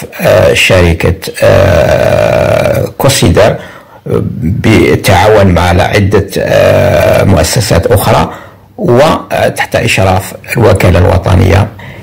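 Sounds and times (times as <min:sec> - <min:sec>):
man saying aaah: 0:00.1 - 0:03.0.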